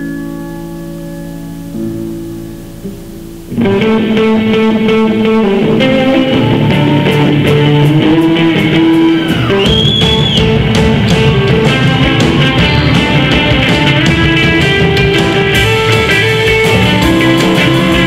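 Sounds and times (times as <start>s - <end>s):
high sliding guitar note: 0.0s - 18.0s
live band with electric guitar: 0.0s - 18.0s
steady drum beat: 5.6s - 18.0s.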